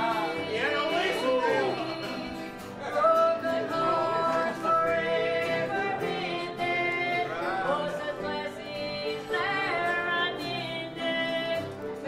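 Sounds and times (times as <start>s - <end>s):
acoustic guitar: 0.0s - 12.0s
voices singing held notes: 0.0s - 12.0s.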